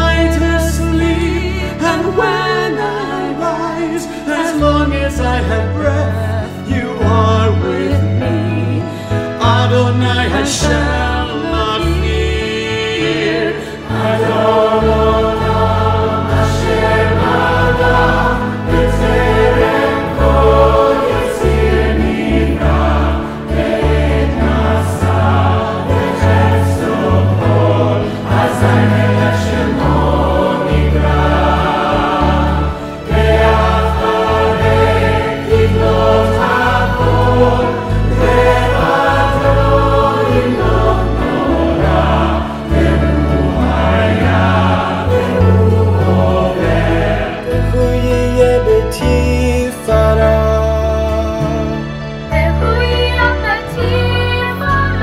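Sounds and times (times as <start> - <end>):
mixed choir singing: 10.0 - 49.1.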